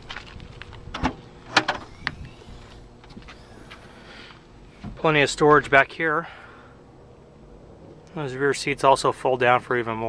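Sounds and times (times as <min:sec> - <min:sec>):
liftgate clunk: 0:00.9 - 0:02.2.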